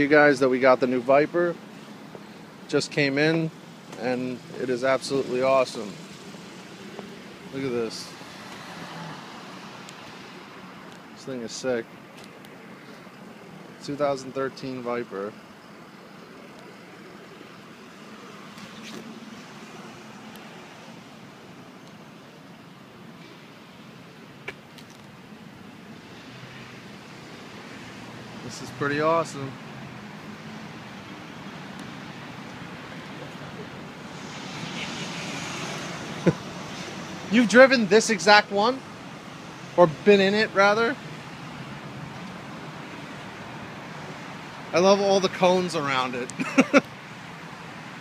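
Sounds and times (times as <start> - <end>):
traffic noise: 0.0 - 48.0.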